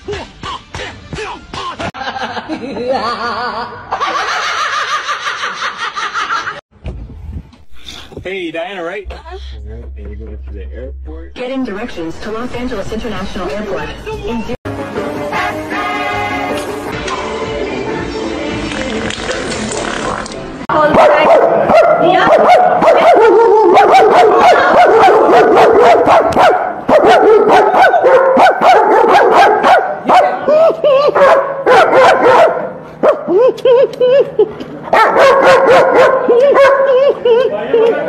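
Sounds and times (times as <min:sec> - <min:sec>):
dog barking: 0:20.8 - 0:30.4, 0:31.1 - 0:33.3, 0:34.9 - 0:37.0.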